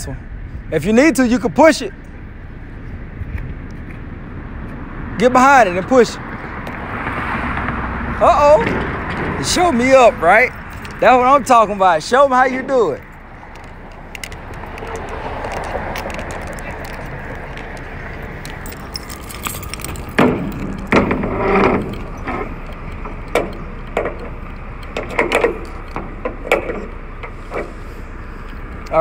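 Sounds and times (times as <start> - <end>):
background rumble: 6.2 - 29.0
metal door latch clanking: 19.4 - 27.0.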